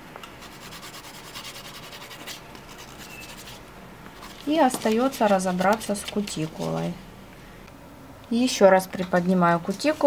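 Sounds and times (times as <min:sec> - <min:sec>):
nail file rubbing fingernail: 0:00.4 - 0:03.6.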